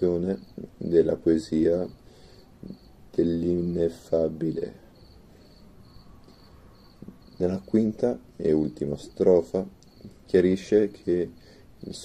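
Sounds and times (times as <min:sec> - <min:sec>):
faint room hiss: 0:00.0 - 0:12.0
high-pitched insect-like chirps: 0:00.2 - 0:11.2.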